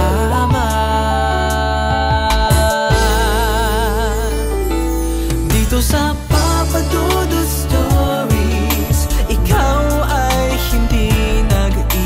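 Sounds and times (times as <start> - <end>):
backing music: 0.0 - 12.0
person singing: 0.0 - 12.0.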